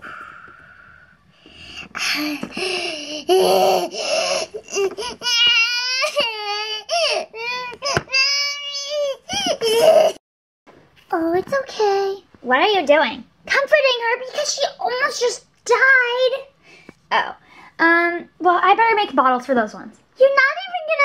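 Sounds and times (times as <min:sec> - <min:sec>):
baby crying: 0:02.0 - 0:10.2.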